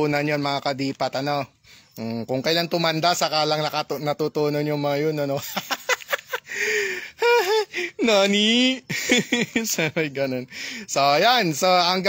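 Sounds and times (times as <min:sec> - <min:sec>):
man laughing breaths: 0:05.9 - 0:08.0, 0:08.9 - 0:09.4, 0:10.5 - 0:10.9
man gasping: 0:06.5 - 0:08.0, 0:10.5 - 0:10.9.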